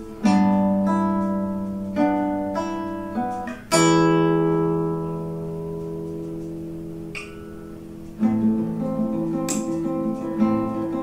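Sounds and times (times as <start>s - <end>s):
nylon-string guitar fingerpicked melody: 0.0s - 11.0s.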